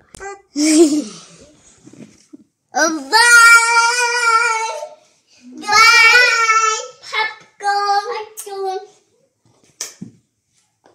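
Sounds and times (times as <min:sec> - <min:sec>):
child singing high notes: 0:02.8 - 0:08.9.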